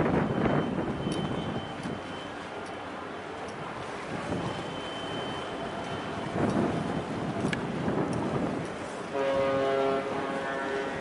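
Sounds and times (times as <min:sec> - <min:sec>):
ship's horn blast: 0:04.0 - 0:11.0.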